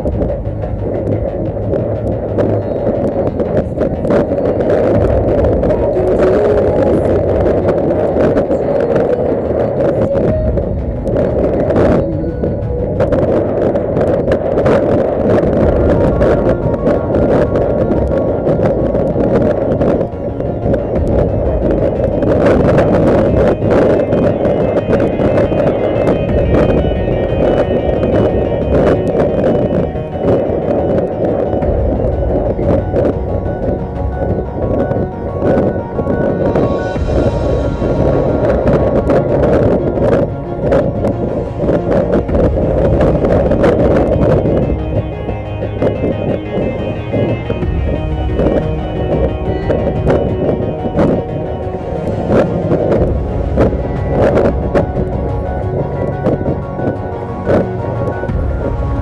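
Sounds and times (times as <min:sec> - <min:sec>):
dense steady noise: 0:00.0 - 0:59.0
music playing: 0:00.0 - 0:59.0.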